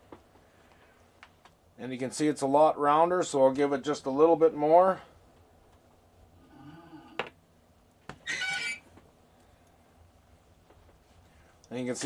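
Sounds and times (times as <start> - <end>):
steel cable squeaking: 8.2 - 8.9.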